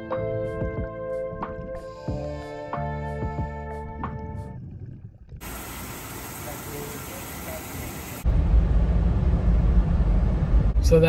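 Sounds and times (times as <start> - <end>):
car cabin road rumble: 4.7 - 11.0
faint hiss: 5.4 - 8.2.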